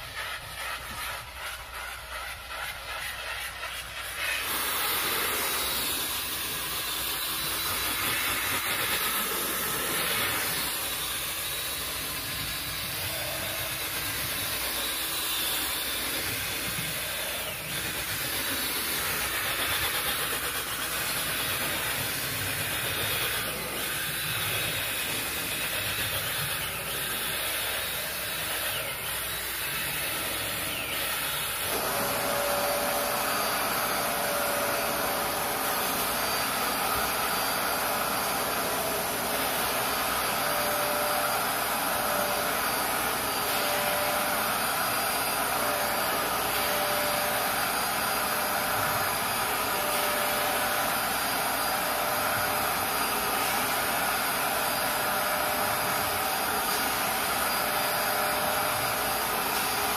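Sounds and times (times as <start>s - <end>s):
drill spinning scrub brush on carpet: 0.0s - 59.9s
vacuum extractor whining: 4.1s - 59.9s.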